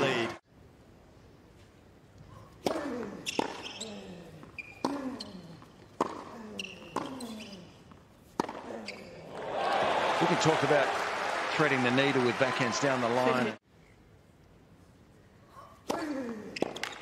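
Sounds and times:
racket striking tennis ball: 2.6 - 4.1, 4.7 - 7.4, 8.2 - 8.7
shoes squeaking on court: 3.2 - 9.3, 16.4 - 17.0
crowd cheering and applause: 9.3 - 13.6.

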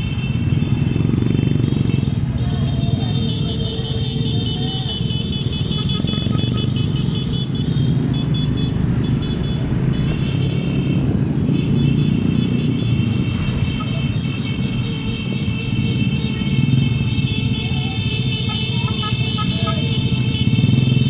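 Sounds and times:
motorcycle engines running: 0.0 - 21.0
road noise: 0.0 - 21.0.

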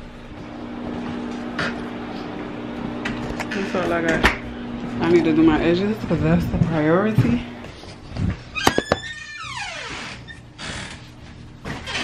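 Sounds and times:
door hinge creaking: 8.6 - 11.0, 11.7 - 12.0.

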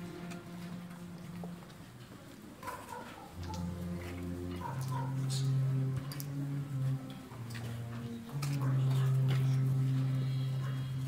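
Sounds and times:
slow processional music: 0.0 - 11.0.

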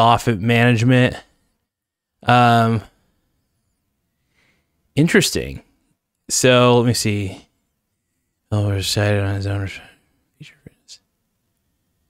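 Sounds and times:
man whispering: 8.5 - 11.0.

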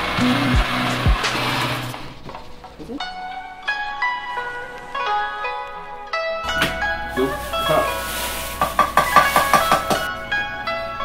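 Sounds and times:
plucked-string background music: 0.0 - 11.0
plastic bag rustling: 6.5 - 10.1.

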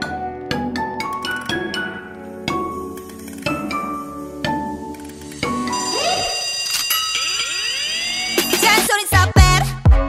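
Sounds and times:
rising synth sweeps: 5.4 - 8.9
high synthesizer tones: 5.4 - 9.1
swooping pitch glides: 5.6 - 8.9.

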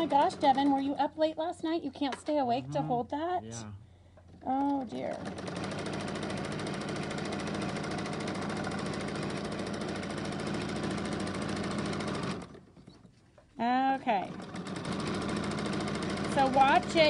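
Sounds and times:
sewing machine stitching: 0.0 - 1.0, 4.3 - 13.1, 14.1 - 17.0.

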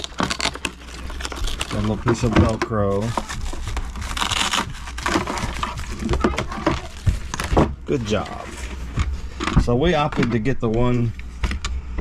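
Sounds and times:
plastic packaging crinkling: 0.0 - 9.7.

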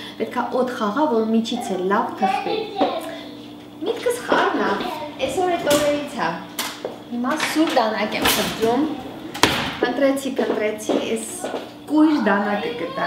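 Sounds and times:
people talking: 0.2 - 6.5, 7.1 - 13.0
kitchen items knocking: 5.3 - 11.1.

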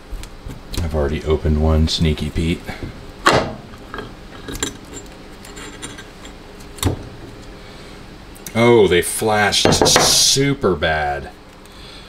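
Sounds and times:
metal mold clicking and clinking: 3.3 - 7.0.

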